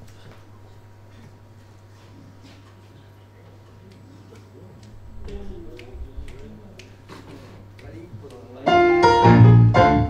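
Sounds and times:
faint murmuring voices: 0:00.2 - 0:08.8
finger snaps: 0:03.8 - 0:08.4.

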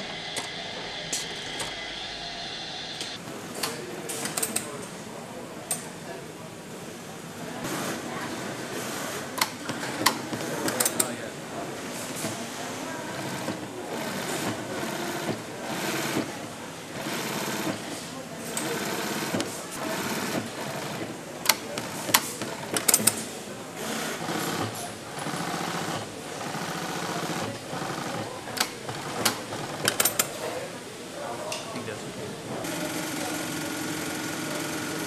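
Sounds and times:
sewing machine stitching leather: 0:08.8 - 0:11.1, 0:13.0 - 0:30.4.

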